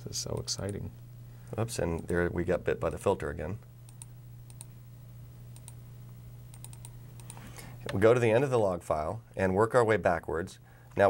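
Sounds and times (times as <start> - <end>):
low electrical hum: 0.0 - 11.0
computer mouse clicks: 3.9 - 4.7, 5.5 - 5.8, 6.5 - 8.0.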